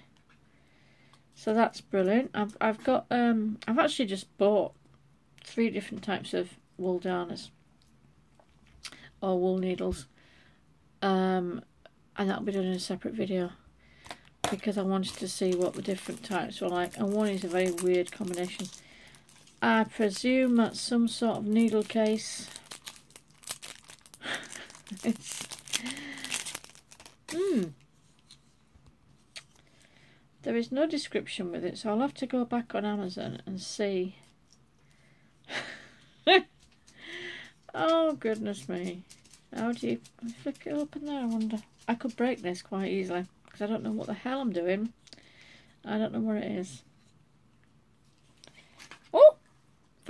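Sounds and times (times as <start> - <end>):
light crinkling: 14.5 - 29.6, 36.4 - 44.2.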